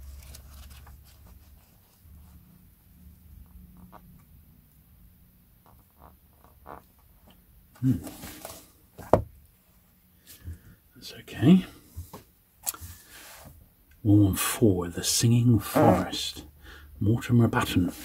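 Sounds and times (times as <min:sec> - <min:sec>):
book pages rustling: 0:00.0 - 0:02.4
book knocking on table: 0:09.0 - 0:09.3.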